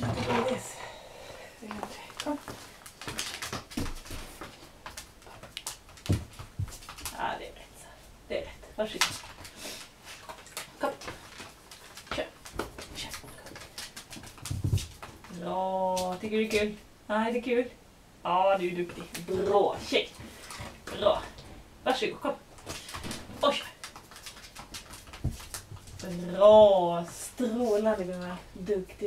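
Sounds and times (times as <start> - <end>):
dog claws tapping on hard floor: 2.2 - 7.2, 10.2 - 15.3, 22.6 - 26.1.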